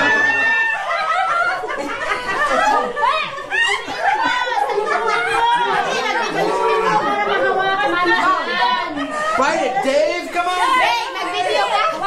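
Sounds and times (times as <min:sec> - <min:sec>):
party chatter: 0:00.0 - 0:12.0.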